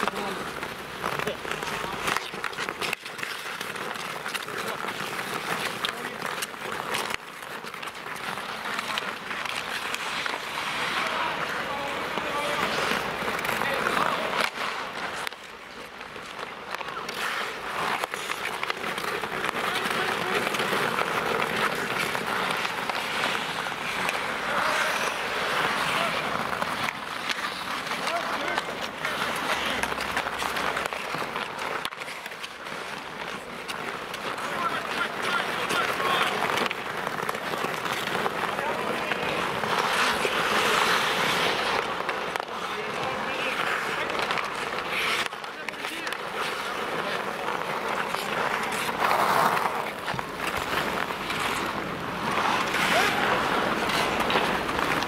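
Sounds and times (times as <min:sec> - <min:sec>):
hockey sticks clacking: 0:00.0 - 0:55.0
skate blades scraping ice: 0:00.0 - 0:55.0
players shouting: 0:24.0 - 0:29.9, 0:34.3 - 0:36.7, 0:52.3 - 0:54.5.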